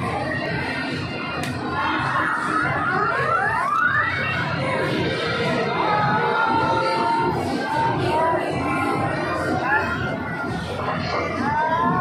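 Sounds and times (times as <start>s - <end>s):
arcade background music: 0.0s - 12.0s
people chattering: 0.0s - 12.0s
arcade machine rising tones: 1.9s - 7.6s.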